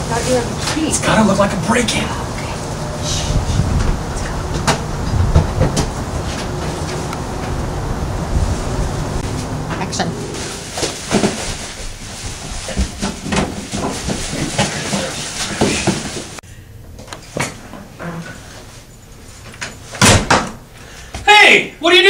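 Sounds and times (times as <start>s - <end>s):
plastic bag rustling: 9.2s - 16.4s
man's raised voice: 21.2s - 22.0s.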